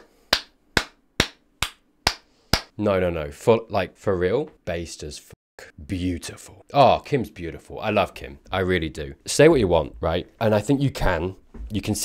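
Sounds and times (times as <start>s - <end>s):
slow hand clapping: 0.0s - 2.7s.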